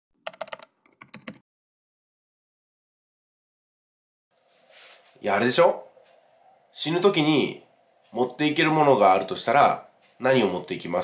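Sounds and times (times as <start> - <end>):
keyboard typing: 0.2 - 1.4.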